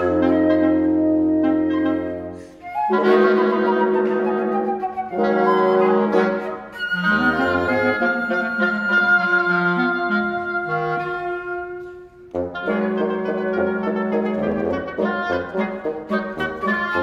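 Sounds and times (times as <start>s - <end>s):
woodwind quartet holding notes: 0.0s - 17.0s.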